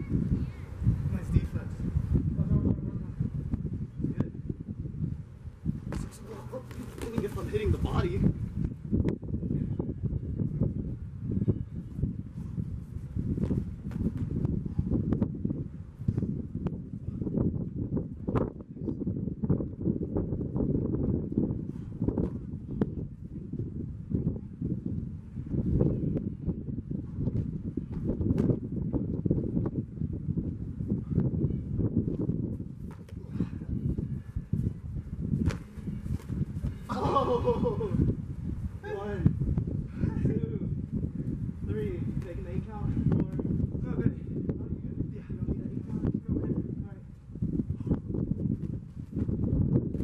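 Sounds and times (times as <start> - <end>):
steady low rumble: 0.0 - 50.0
boxing gloves knocks and slaps: 35.4 - 36.3.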